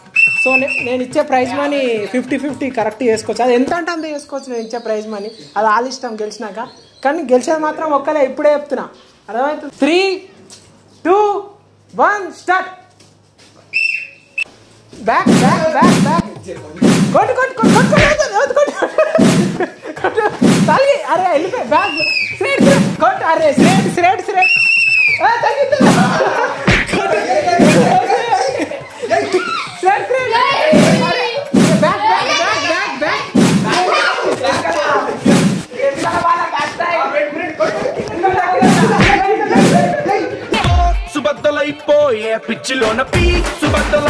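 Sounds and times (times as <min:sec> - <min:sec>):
whistle blast: 0:00.2 - 0:00.9, 0:13.8 - 0:14.5
cloth bundle thudding: 0:16.8 - 0:18.2, 0:22.6 - 0:23.0, 0:25.8 - 0:27.0, 0:35.2 - 0:35.7, 0:38.6 - 0:39.9
people shouting and laughing: 0:24.8 - 0:36.4, 0:37.4 - 0:41.1.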